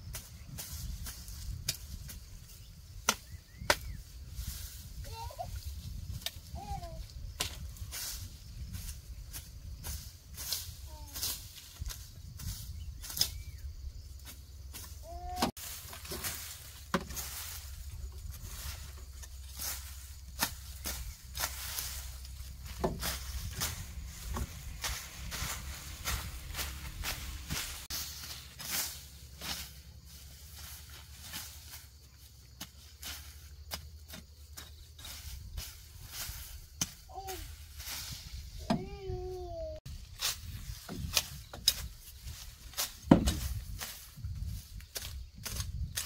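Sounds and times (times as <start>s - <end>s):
grass rustling: 0.0s - 46.0s
machete cutting grass: 3.0s - 13.5s, 14.2s - 32.0s, 32.6s - 39.0s, 40.0s - 46.0s.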